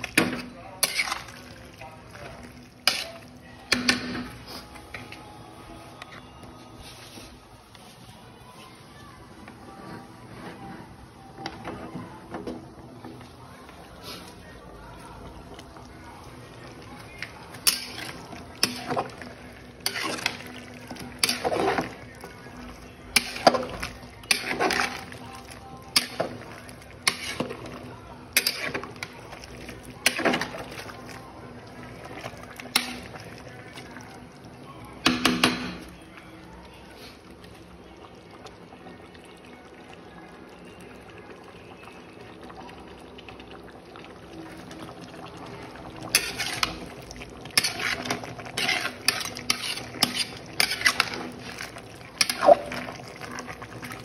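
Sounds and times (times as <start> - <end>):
metal ladle scraping pot: 0.0 - 1.4, 17.6 - 22.0, 23.1 - 25.2, 25.9 - 27.7, 28.3 - 29.1, 46.0 - 53.1
gravy bubbling in metal pot: 9.1 - 54.0.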